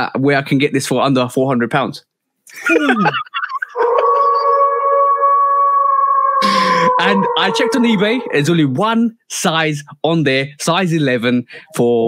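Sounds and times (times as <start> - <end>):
steady electronic tone: 3.7 - 8.6
person speaking: 6.4 - 9.0.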